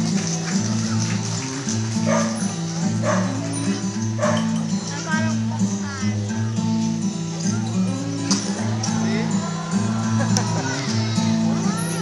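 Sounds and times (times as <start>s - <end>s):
background music: 0.0s - 12.0s
dog barking: 2.0s - 3.5s, 4.1s - 4.7s.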